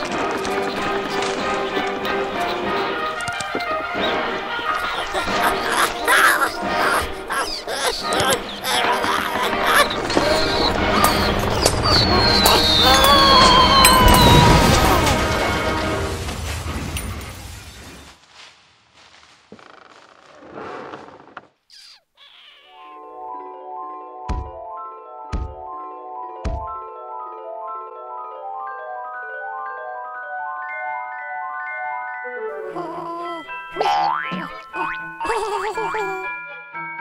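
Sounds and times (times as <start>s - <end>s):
debris rattling: 0.0s - 3.8s
cartoon rising glide effect: 5.0s - 15.6s
cartoon crash: 11.8s - 18.0s.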